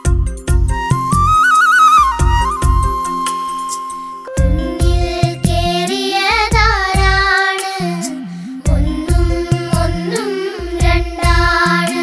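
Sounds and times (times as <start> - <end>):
bass and drum backing: 0.0 - 3.4, 4.4 - 5.8, 6.4 - 7.4, 8.7 - 10.0, 10.7 - 12.0
person singing with vibrato: 4.3 - 12.0.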